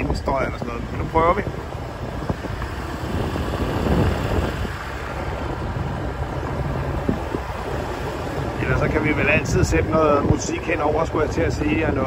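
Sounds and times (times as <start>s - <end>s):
wind on microphone: 0.0s - 12.0s
motorcycle engine running: 1.5s - 8.6s.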